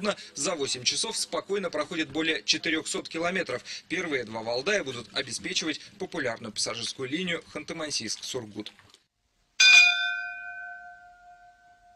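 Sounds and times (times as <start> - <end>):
ship's bell ringing: 9.6 - 11.9.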